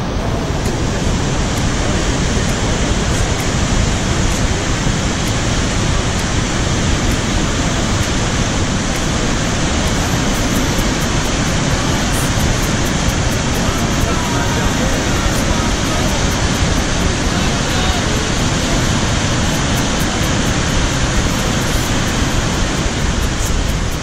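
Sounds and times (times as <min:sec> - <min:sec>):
waterfall rushing: 0:00.0 - 0:24.0.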